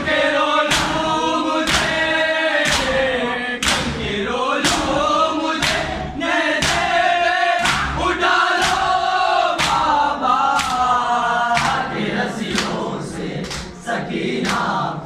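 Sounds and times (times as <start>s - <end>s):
men chanting in unison: 0.0s - 15.0s
hands slapping bare chests: 0.7s - 1.0s, 1.6s - 2.0s, 2.6s - 3.0s, 3.6s - 4.0s, 5.6s - 5.9s, 6.6s - 7.0s, 7.6s - 8.0s, 8.6s - 8.9s, 9.6s - 9.9s, 10.6s - 10.9s, 11.6s - 11.9s.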